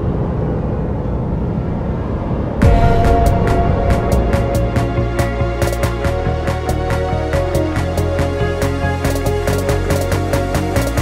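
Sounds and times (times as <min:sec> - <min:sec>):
low steady rumble: 0:00.0 - 0:08.2.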